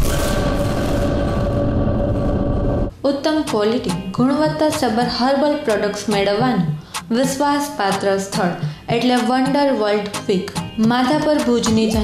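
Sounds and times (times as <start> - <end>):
rushing sound effect: 0.0 - 2.9.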